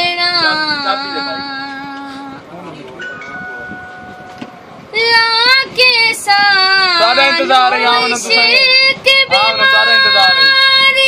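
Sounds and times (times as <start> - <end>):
girl singing: 0.0 - 2.4, 4.9 - 11.0.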